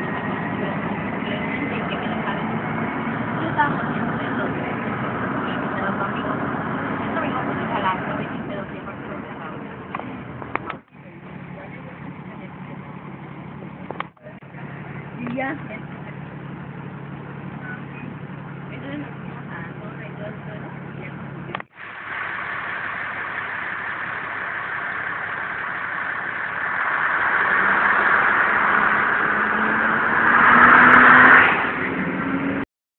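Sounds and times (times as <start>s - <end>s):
steady low hum: 0.0s - 31.2s
vehicle engine and road noise: 0.0s - 32.7s.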